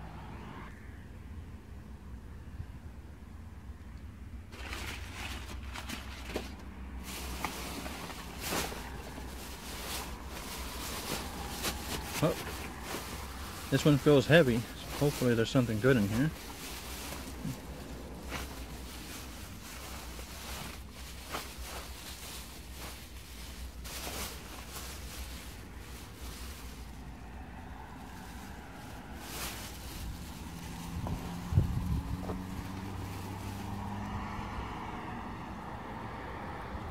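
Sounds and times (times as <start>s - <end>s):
plastic bags rustling: 4.5s - 33.9s.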